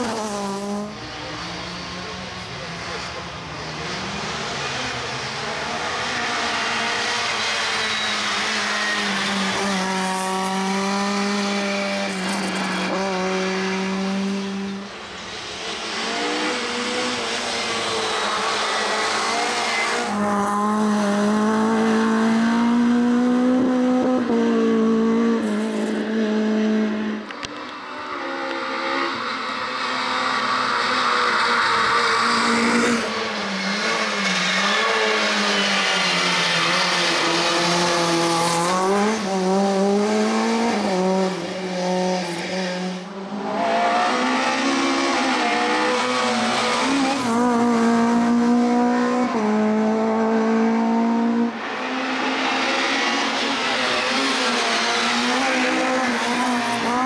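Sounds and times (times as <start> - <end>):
racing car engine at full throttle: 0.0 - 57.0.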